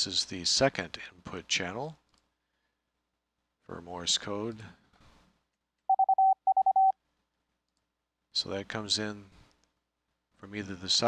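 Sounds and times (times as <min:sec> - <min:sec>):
morse code beeping: 0:05.9 - 0:06.9.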